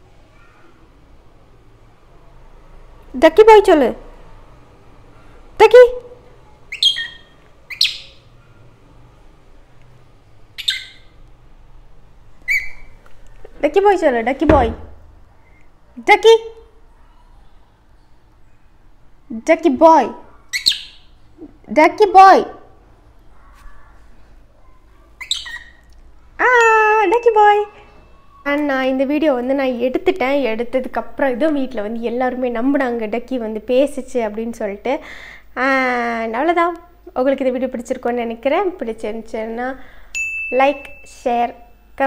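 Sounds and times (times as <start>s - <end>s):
lovebird high-pitched calls: 6.7s - 8.3s, 10.6s - 11.2s, 12.5s - 13.0s, 20.5s - 21.2s, 25.2s - 25.8s.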